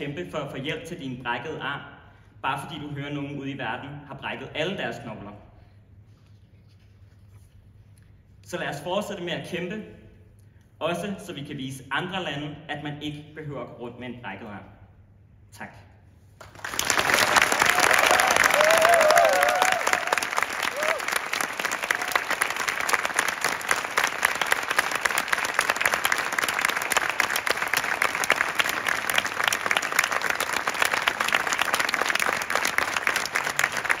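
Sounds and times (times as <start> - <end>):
audience applauding: 16.4 - 34.0.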